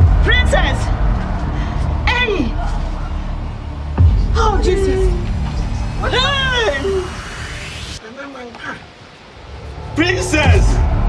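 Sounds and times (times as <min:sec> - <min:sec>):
low background rumble: 0:00.0 - 0:07.7.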